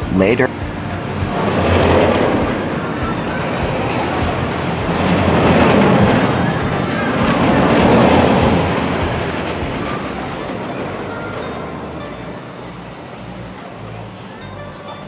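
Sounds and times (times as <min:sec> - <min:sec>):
music with ticking beat: 0:00.0 - 0:15.0
rushing noise: 0:00.0 - 0:15.0.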